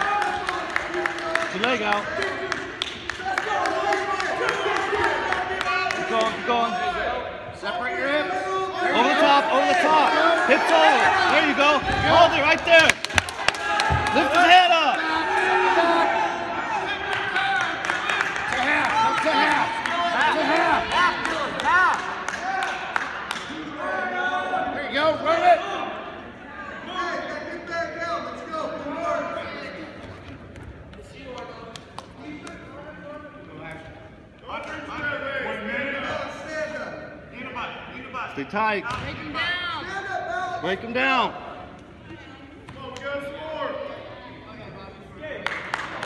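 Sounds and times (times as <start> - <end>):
voices shouting in gymnasium: 0.0 - 30.0, 30.7 - 46.0.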